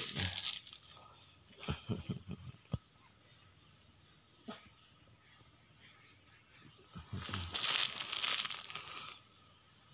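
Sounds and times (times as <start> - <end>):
close rustling and crinkling: 0.0 - 1.0, 7.1 - 9.2.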